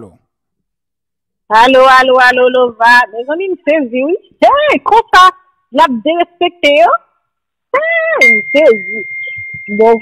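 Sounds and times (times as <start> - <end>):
person speaking: 0.0 - 0.2
steady high-pitched tone: 8.0 - 10.0.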